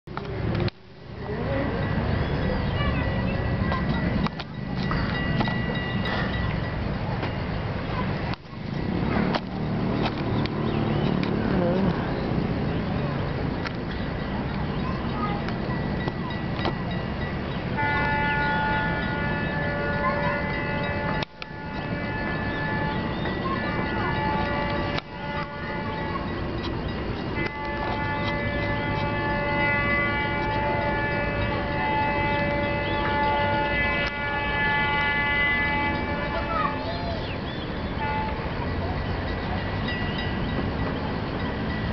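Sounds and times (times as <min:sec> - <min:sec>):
locomotive horn blasts: 0:17.6 - 0:38.6.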